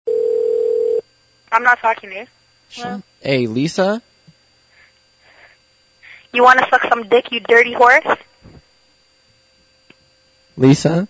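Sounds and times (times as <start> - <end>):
faint electrical hum: 0.1 - 11.0.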